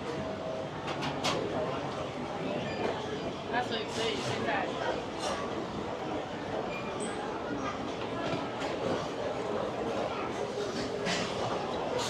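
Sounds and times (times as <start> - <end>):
busy shopping concourse rumble: 0.0 - 12.0.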